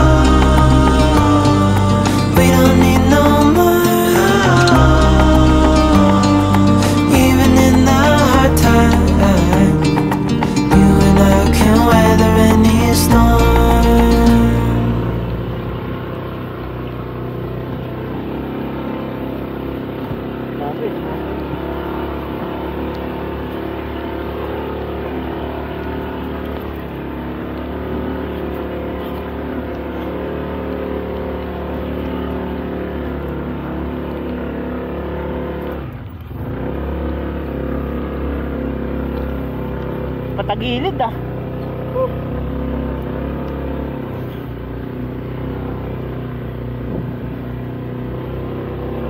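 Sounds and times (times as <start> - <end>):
vehicle engine running: 0.0 - 49.0.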